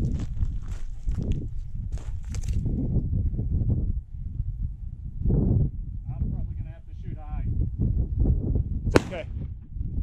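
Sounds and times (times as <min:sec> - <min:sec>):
low wind rumble on microphone: 0:00.0 - 0:10.0
distant shotgun shot: 0:08.9 - 0:09.4.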